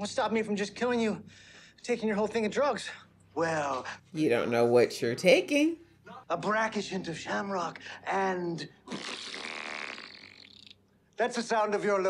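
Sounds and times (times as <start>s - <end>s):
man blowing a raspberry: 8.8s - 10.8s.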